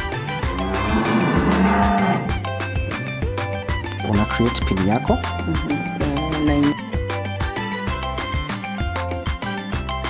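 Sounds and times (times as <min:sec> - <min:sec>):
background music with steady beat: 0:00.0 - 0:10.0
cow mooing: 0:00.2 - 0:02.5.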